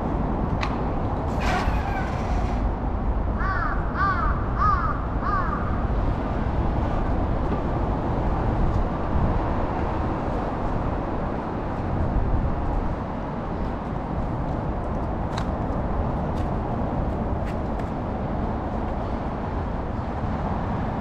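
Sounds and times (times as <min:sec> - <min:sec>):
city traffic rumble: 0:00.0 - 0:21.0
crow cawing: 0:03.4 - 0:05.7.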